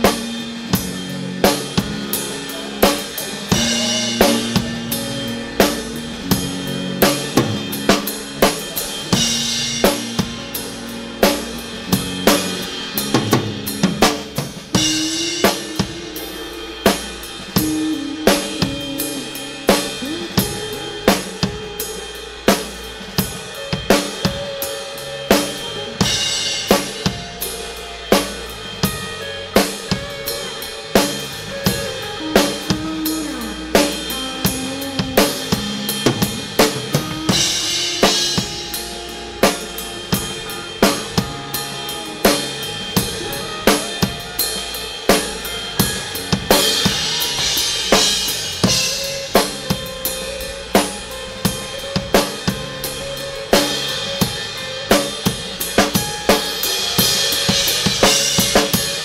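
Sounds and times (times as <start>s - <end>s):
acoustic drum kit beat: 0.0s - 59.0s
backing music track: 0.0s - 59.0s.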